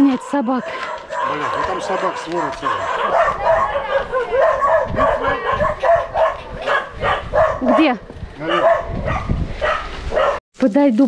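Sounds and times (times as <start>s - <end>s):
dogs barking: 0.0s - 10.4s.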